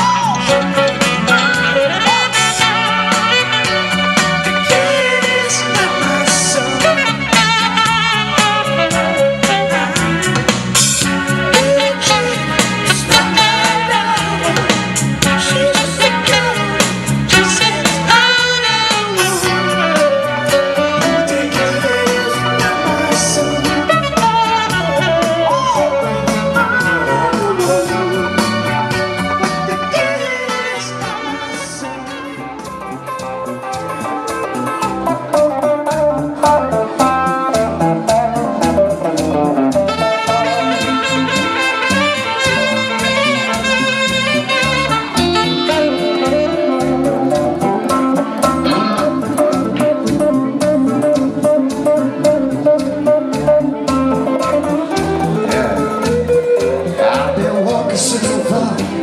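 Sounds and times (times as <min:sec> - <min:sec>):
electric guitar: 0:00.0 - 0:59.0
saxophone: 0:00.0 - 0:59.0
steady drum beat: 0:00.0 - 0:59.0.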